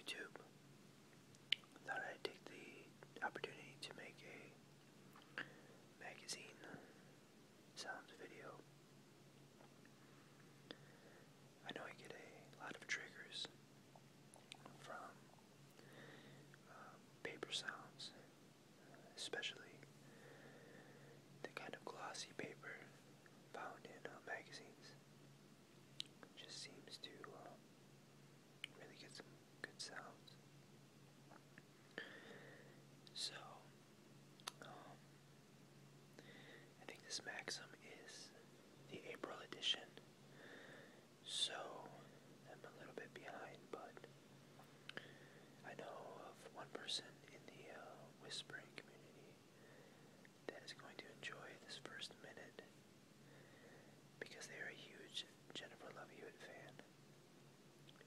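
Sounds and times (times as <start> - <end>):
person whispering: 0.0 - 0.5, 1.8 - 4.6, 6.0 - 7.0, 7.8 - 8.6, 11.6 - 13.6, 14.5 - 15.3, 16.6 - 19.9, 21.4 - 25.0, 26.2 - 27.6, 28.7 - 30.3, 33.1 - 33.7, 34.5 - 35.0, 36.8 - 40.0, 41.2 - 44.1, 45.6 - 49.4, 50.5 - 52.7, 54.2 - 56.9
low steady hum: 0.0 - 58.0.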